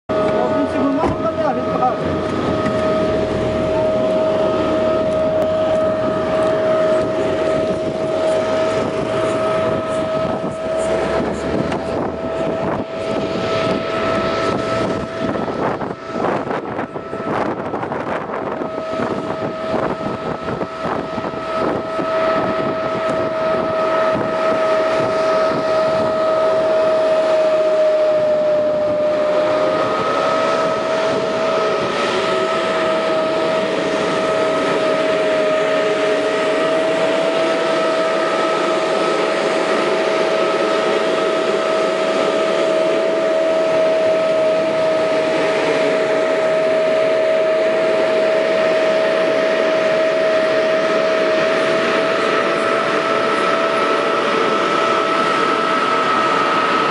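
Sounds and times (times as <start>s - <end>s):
rushing air: 0.1s - 56.9s
sprayer fan whine: 0.1s - 56.9s
tractor engine: 0.1s - 56.9s.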